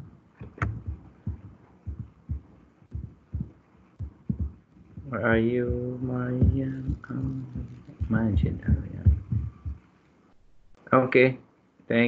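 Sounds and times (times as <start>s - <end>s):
low muffled thumps: 0.0s - 10.8s
faint hum: 0.0s - 12.0s.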